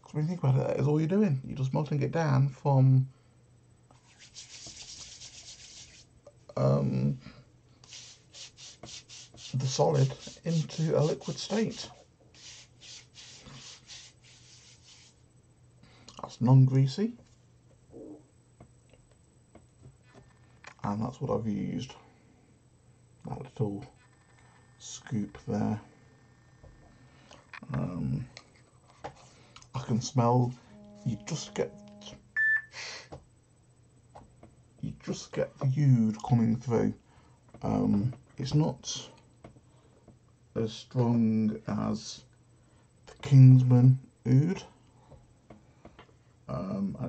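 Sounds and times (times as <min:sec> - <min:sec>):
palms rubbing together: 0:03.9 - 0:06.1, 0:07.8 - 0:15.2
short electronic beep: 0:30.6 - 0:32.8.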